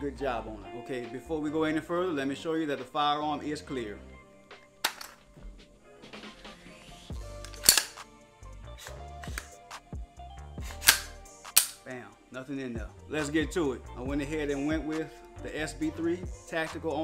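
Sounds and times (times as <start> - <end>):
gun action metallic clicks: 4.8 - 5.2, 7.4 - 8.1, 8.8 - 9.6, 10.6 - 11.9.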